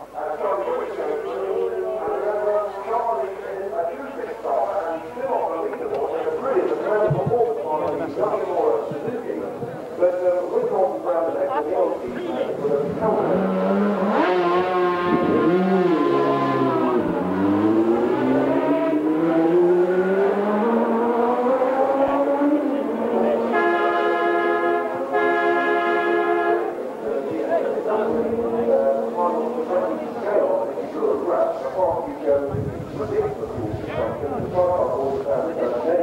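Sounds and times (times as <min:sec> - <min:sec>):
voices: 0:00.0 - 0:36.0
racing motorcycle engine revving: 0:12.6 - 0:26.6, 0:27.9 - 0:30.1.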